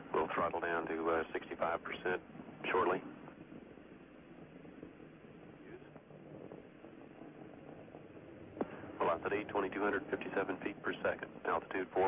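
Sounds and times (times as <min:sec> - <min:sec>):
radio channel hiss: 0:00.0 - 0:12.0.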